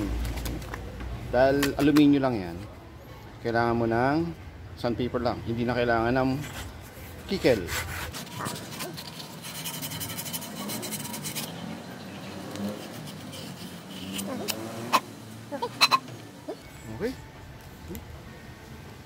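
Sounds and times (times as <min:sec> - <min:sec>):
sandpaper scratching on metal: 0:06.4 - 0:15.0.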